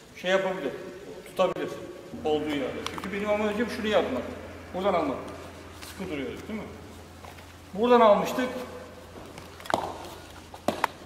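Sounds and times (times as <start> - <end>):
footwork on foam mats: 8.6 - 11.0.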